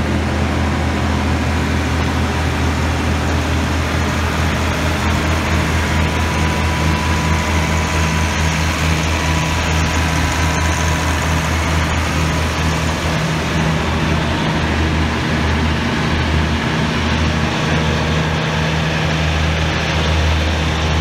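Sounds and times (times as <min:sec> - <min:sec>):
tractor diesel engine idling: 0:00.0 - 0:21.0.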